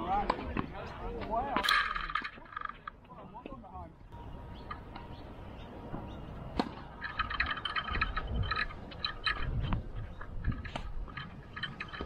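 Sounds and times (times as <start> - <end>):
tennis ball impact: 5.9 - 6.9.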